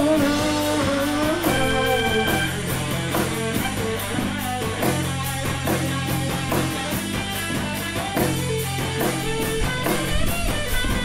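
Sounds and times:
electric guitar: 0.0 - 11.0
live rock band: 0.0 - 11.0.

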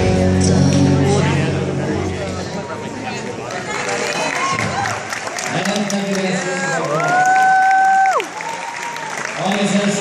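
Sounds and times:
audience applauding: 3.4 - 10.0
high cheer: 3.6 - 5.7, 6.4 - 9.5.

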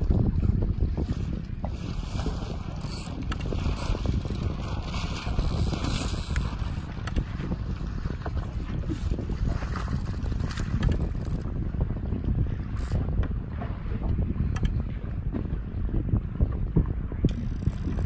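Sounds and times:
wind buffeting microphone: 0.0 - 18.0
faint ticks: 14.5 - 14.8.

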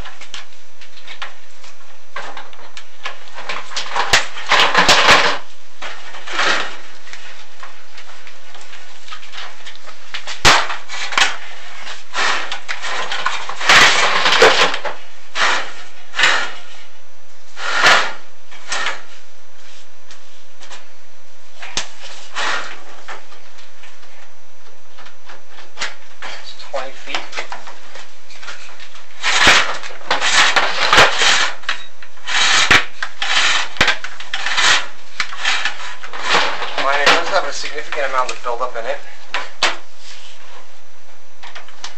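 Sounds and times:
steady low hum: 0.0 - 41.9.

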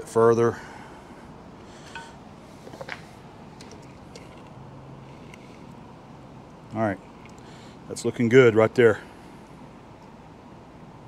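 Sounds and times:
shop room tone: 0.0 - 5.9.

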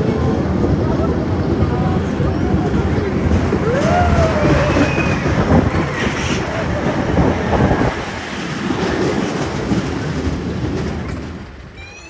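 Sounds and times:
roller coaster wheels rattling: 0.0 - 12.0.

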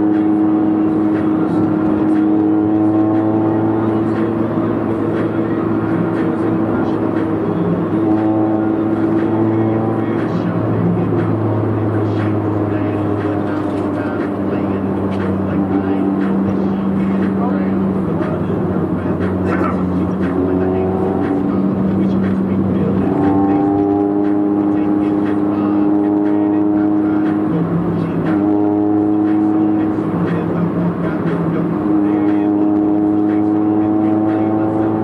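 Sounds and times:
car engine and road drone: 0.0 - 35.0
sustained tones: 0.0 - 35.0.

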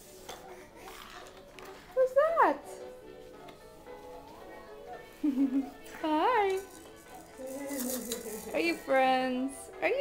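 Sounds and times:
plastic toys clicking: 6.6 - 8.6.

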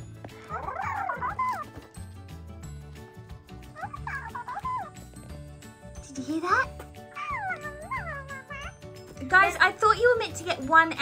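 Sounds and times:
background music: 0.0 - 11.0
toy electronic animal calls: 3.8 - 5.0.

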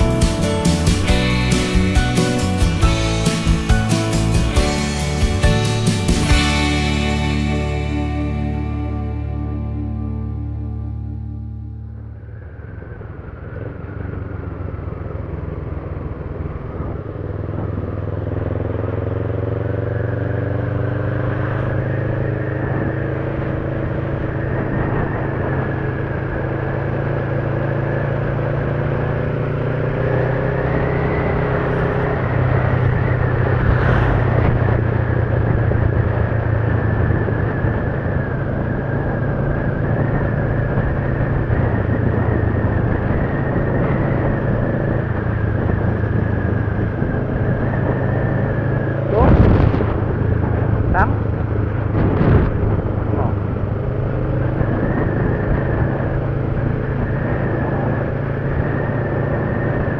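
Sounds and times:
motorcycle engine running: 0.0 - 59.9
road and wind rush: 0.0 - 59.9.

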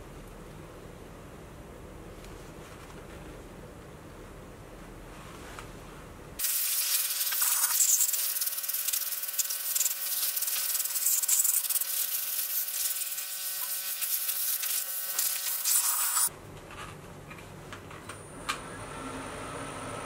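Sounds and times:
compressed air blow gun hissing: 6.4 - 16.3.

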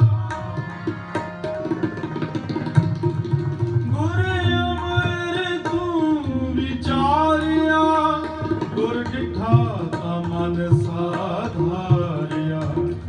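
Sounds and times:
tabla: 0.0 - 13.0
man singing: 3.9 - 13.0.

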